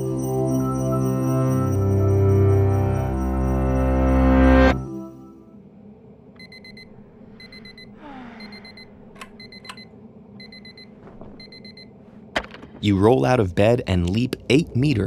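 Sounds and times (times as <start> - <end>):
alarm clock beeping: 6.4 - 11.9.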